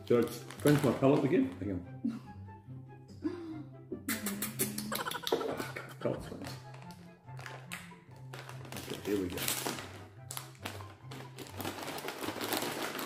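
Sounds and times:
plastic snack packet crinkling: 0.0 - 1.8, 6.2 - 13.0
background music with bass line: 1.8 - 8.5.

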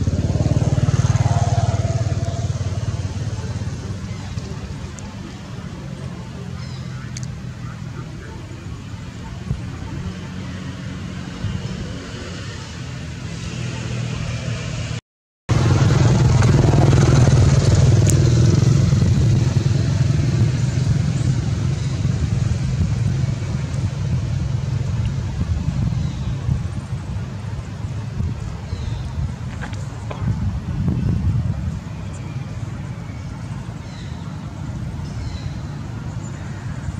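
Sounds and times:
engine rumble: 0.0 - 36.9.

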